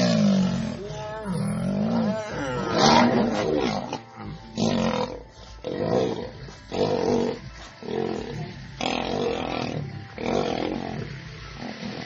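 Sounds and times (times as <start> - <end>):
lions roaring and fighting: 0.0 - 12.0.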